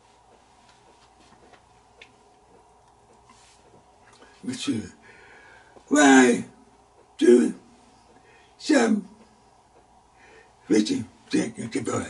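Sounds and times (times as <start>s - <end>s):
faint irregular clicks: 0.2s - 4.4s.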